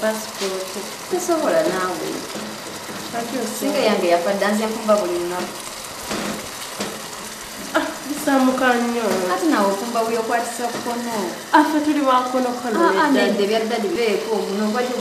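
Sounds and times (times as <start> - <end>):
woman talking: 0.0 - 2.3, 3.1 - 5.6, 7.8 - 15.0
food sizzling in a pan: 0.0 - 15.0.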